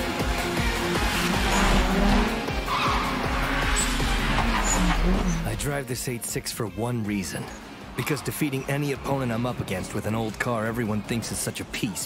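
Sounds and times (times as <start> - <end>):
car engine running hard: 0.0 - 5.7
tyres squealing: 1.0 - 5.7.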